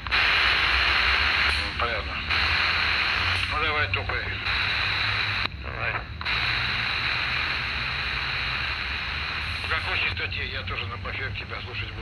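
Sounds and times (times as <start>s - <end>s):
radio static hiss: 0.0s - 12.0s
voice over radio: 1.4s - 2.4s, 3.2s - 4.7s, 5.6s - 6.6s, 9.4s - 12.0s.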